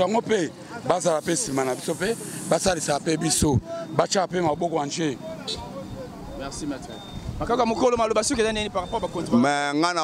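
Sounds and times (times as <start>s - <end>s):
man talking into a microphone: 0.0s - 10.0s.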